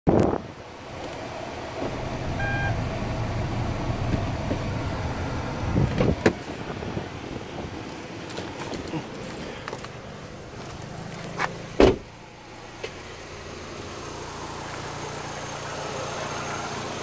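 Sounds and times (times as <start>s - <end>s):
car engine idling: 0.7s - 17.0s
short electronic beep: 2.3s - 2.8s.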